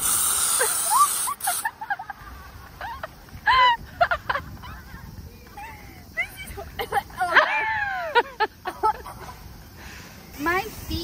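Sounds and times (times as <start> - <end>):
aerosol spray can hissing: 0.0 - 1.8.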